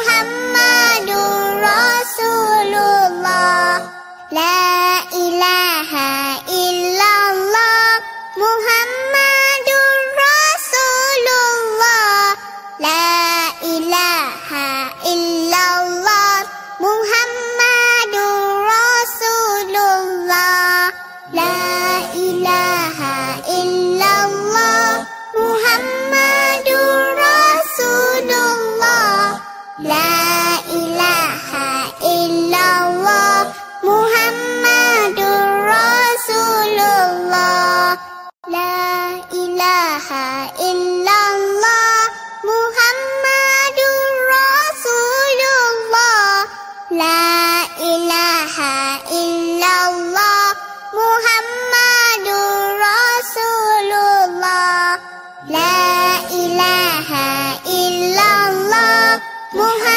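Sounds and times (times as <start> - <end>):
child singing: 0.0 - 59.9.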